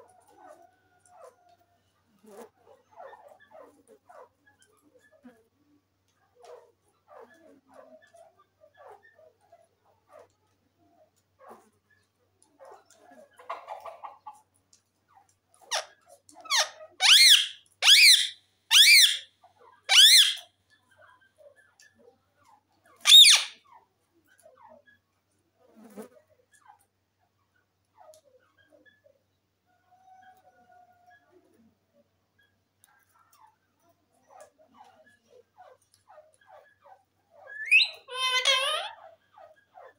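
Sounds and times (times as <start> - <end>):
parakeet shrill screeches: 16.5 - 19.3, 19.9 - 20.5, 23.0 - 23.6, 37.6 - 38.9.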